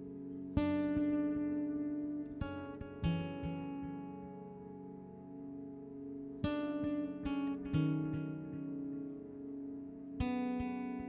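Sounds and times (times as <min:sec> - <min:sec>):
acoustic guitar strummed chords: 0:00.0 - 0:11.0.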